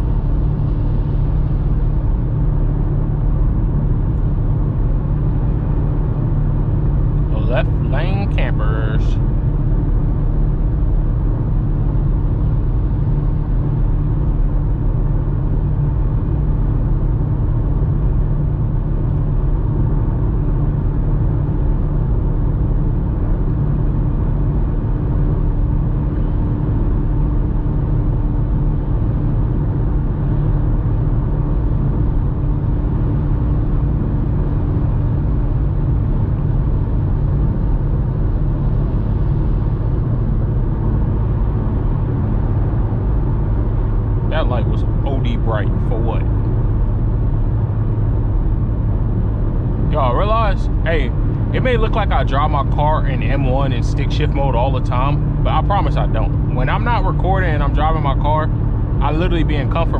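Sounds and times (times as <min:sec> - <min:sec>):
car engine rumble: 0:00.0 - 0:59.9
faint steady hum: 0:00.0 - 0:59.9
road noise: 0:00.0 - 0:59.9.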